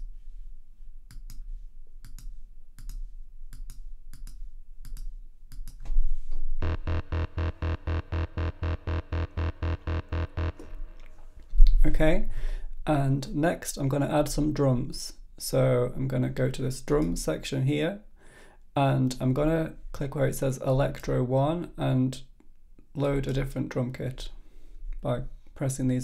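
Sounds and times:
loud low thump: 0:06.6 - 0:11.2
synthesizer bass arpeggio: 0:06.6 - 0:11.4.

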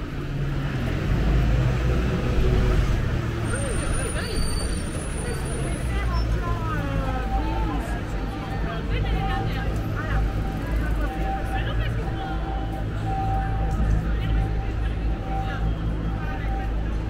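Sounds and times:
traffic rumble: 0:00.0 - 0:17.0
passers-by talking: 0:00.2 - 0:17.0.

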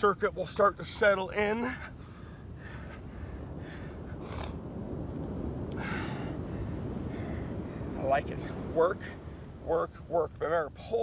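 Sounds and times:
wind rumble on microphone: 0:00.0 - 0:11.0
man breathing hard: 0:05.7 - 0:07.6.

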